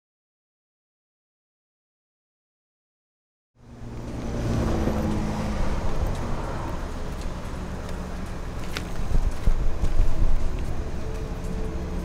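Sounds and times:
city street traffic: 0:03.6 - 0:12.0
vehicle engine running: 0:03.6 - 0:12.0.

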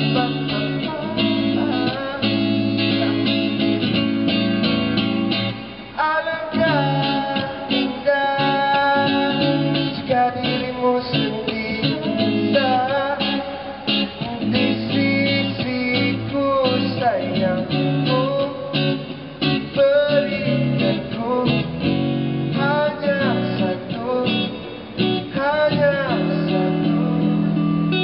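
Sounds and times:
electric guitar strumming chords: 0:00.0 - 0:28.0.

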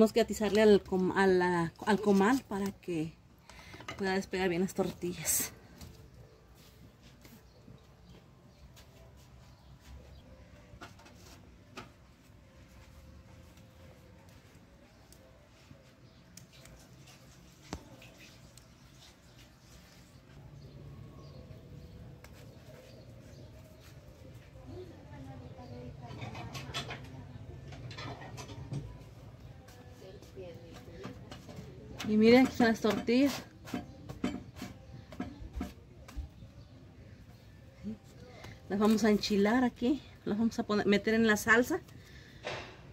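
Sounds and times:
low background noise: 0:00.0 - 0:42.9
wood fire crackling: 0:12.7 - 0:25.1
tortillas tapping on metal griddle: 0:30.7 - 0:36.4.

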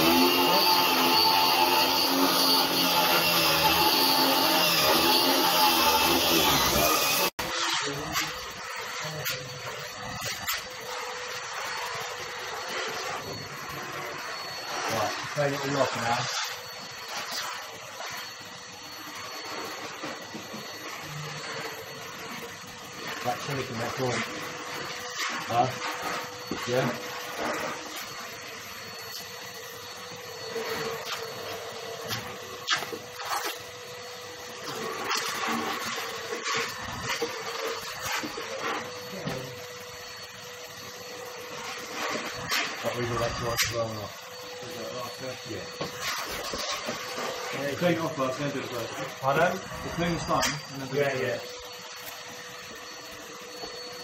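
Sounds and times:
vacuum cleaner whine: 0:00.0 - 0:54.0.

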